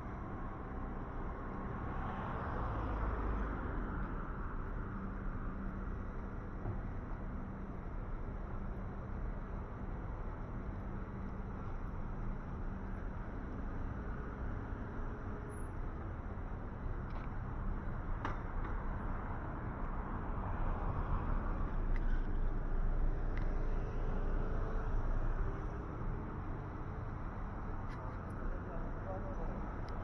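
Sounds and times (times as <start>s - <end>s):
cars driving past: 0.2s - 6.9s.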